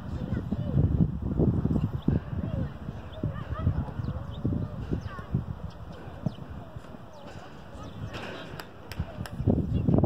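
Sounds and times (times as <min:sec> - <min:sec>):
distant young voices calling out: 0:00.0 - 0:09.8.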